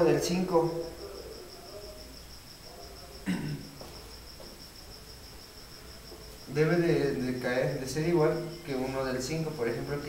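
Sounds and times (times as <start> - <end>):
cricket chirping: 0.0 - 10.0.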